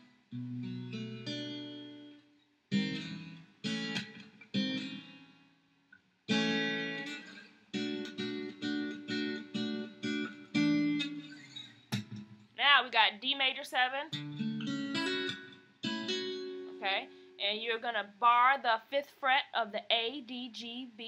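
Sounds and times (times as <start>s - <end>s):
acoustic guitar strumming chords: 0.0s - 5.4s, 6.3s - 12.4s, 14.1s - 17.4s.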